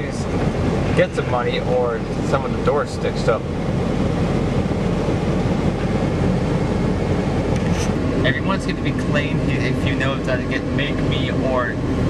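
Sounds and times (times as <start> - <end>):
vehicle engine rumble from cabin: 0.0 - 12.0.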